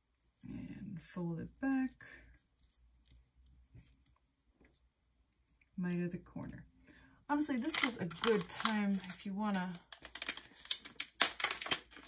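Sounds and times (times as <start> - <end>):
plastic packet crinkling: 7.3 - 12.0.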